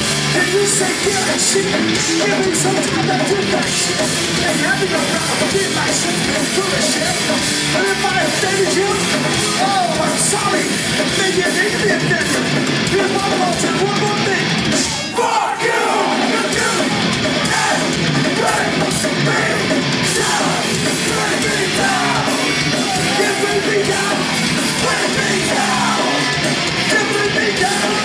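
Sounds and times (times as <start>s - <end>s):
distorted electric guitars: 0.0s - 28.0s
drums: 0.0s - 28.0s
person singing: 16.2s - 28.0s.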